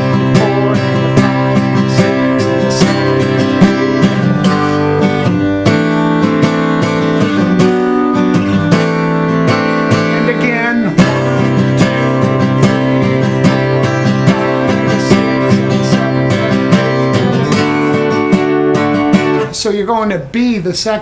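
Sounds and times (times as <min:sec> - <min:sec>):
acoustic guitar strumming: 0:00.0 - 0:21.0.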